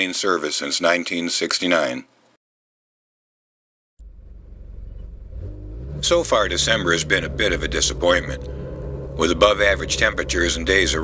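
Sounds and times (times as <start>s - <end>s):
vehicle engine speeding up: 4.0s - 11.0s.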